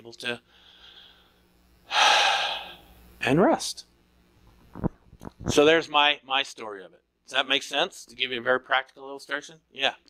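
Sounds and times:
man breathing into microphone: 0.5s - 2.9s.

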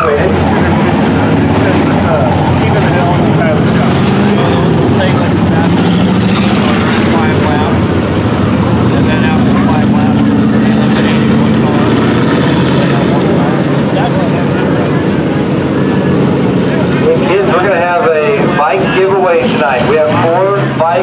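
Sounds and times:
race car engines droning: 0.0s - 21.0s
spectators' voices: 0.0s - 21.0s.

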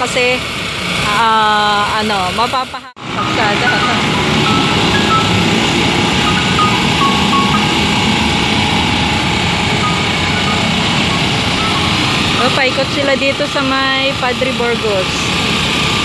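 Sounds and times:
truck engine running: 0.0s - 16.0s
short high-pitched beeps: 3.1s - 12.8s.

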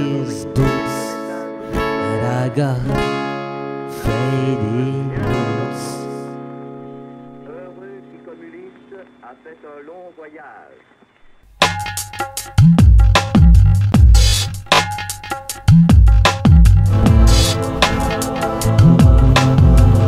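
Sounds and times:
guitar chords strummed: 0.0s - 9.6s, 11.6s - 20.0s.

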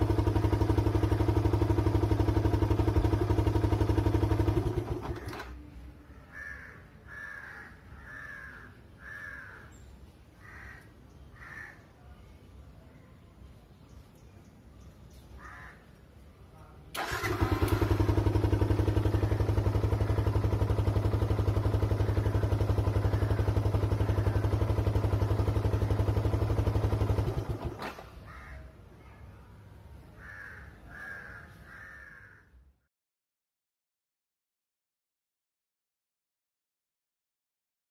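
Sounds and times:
motorcycle engine idling: 0.0s - 5.7s, 17.0s - 28.5s.

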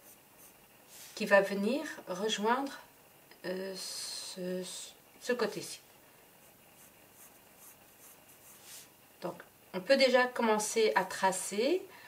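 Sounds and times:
pencil scratching on paper: 0.0s - 0.6s, 6.4s - 8.8s.

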